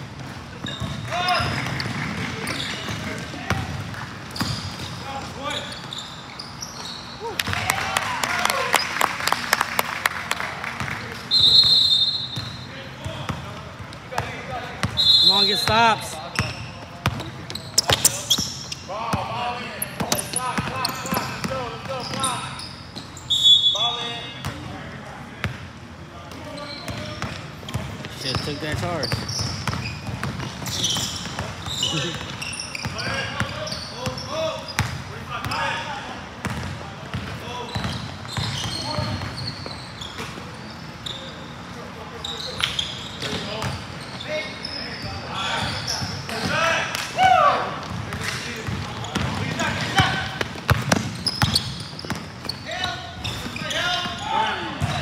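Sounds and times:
high-pitched shoe squeals: 0.6 - 1.6, 4.4 - 7.4, 11.3 - 12.7, 15.0 - 16.8, 17.5 - 18.9, 20.1 - 24.3, 26.5 - 27.2, 28.9 - 34.8, 37.6 - 41.5, 42.2 - 46.6, 51.1 - 54.6
players' voices calling out: 11.1 - 24.0
basketball bouncing on hardwood: 50.4 - 52.5.

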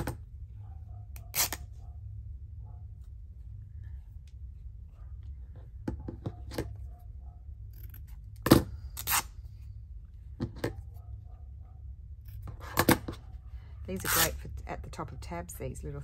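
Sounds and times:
low steady hum: 0.0 - 16.0
fabric being torn: 1.2 - 1.7, 14.0 - 14.4.

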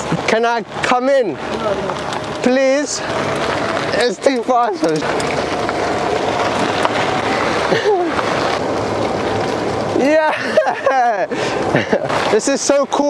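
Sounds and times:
tyres rolling on gravel: 0.0 - 13.0
person laughing: 7.6 - 8.3, 10.1 - 12.2.

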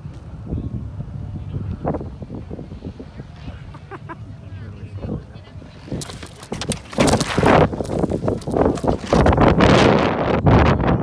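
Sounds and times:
wind buffeting: 0.0 - 11.0.

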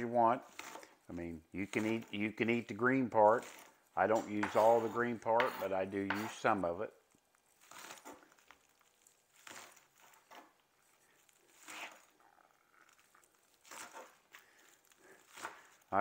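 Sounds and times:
knife cutting on plastic board: 0.4 - 1.0, 3.3 - 6.5, 7.6 - 8.3, 11.5 - 12.2, 13.6 - 16.0.

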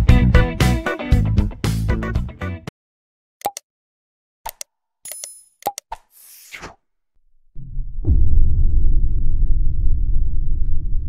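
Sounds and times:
deep rumbling boom: 7.6 - 11.0.

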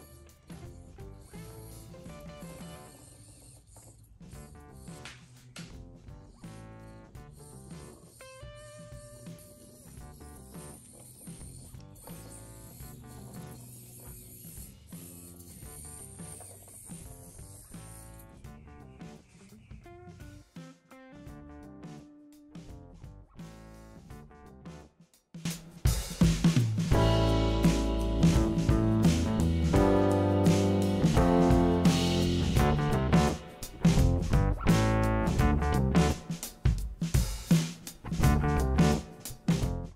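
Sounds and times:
toy car electric motor whirring: 0.0 - 5.6, 7.0 - 18.4
background music: 26.6 - 39.9.

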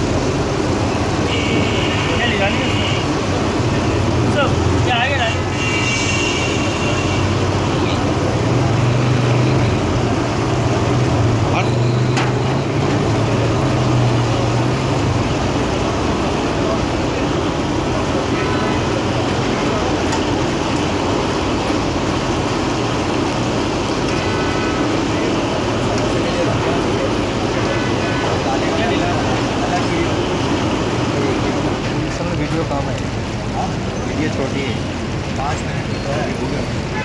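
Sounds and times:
deep-frying sizzle and bubble: 0.0 - 17.4.

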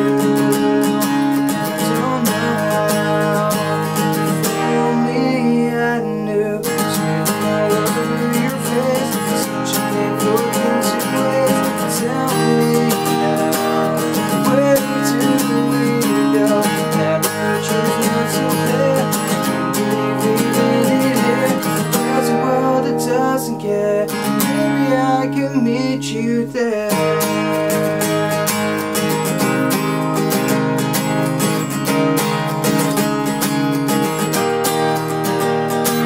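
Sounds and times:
man singing: 0.0 - 29.6
acoustic guitar strumming: 0.0 - 36.0.

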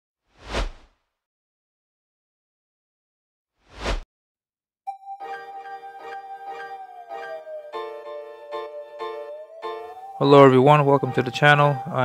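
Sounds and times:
whoosh: 0.3 - 0.9, 3.7 - 4.0.

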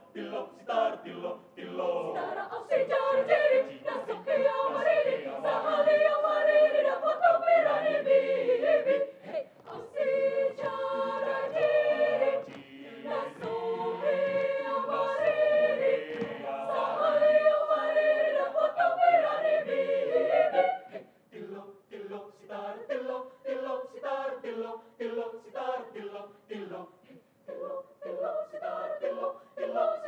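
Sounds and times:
choir singing a cappella: 0.0 - 30.0
rhythmic chanting: 0.0 - 30.0.

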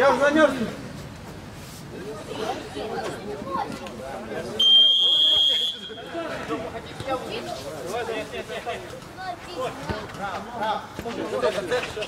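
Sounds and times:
shrill referee whistle blast: 4.6 - 6.0.

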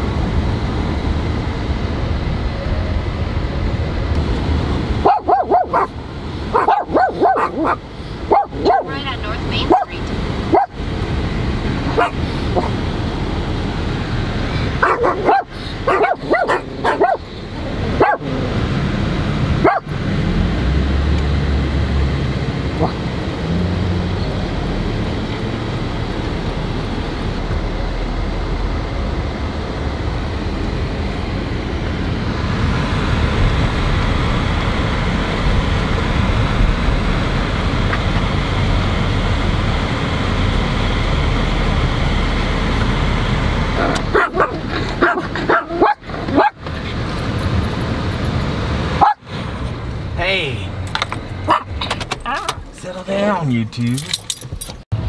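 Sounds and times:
car driving: 0.0 - 55.0
dog barking: 5.0 - 9.0, 9.6 - 10.8, 11.9 - 12.8, 14.8 - 17.3, 18.0 - 18.3, 19.6 - 19.9, 22.8 - 23.0, 44.1 - 46.6, 49.0 - 49.2, 51.4 - 51.7.

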